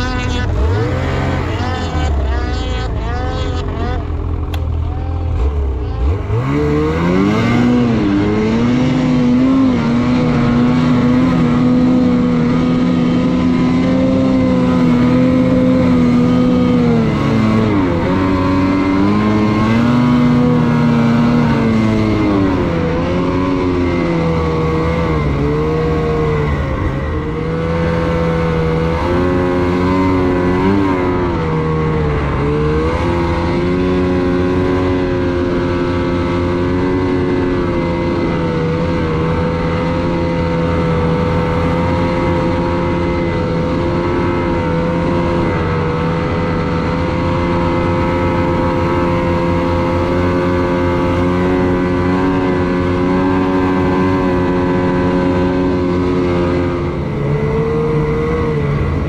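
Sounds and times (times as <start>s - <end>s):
snowmobile engine revving: 0.0s - 59.0s.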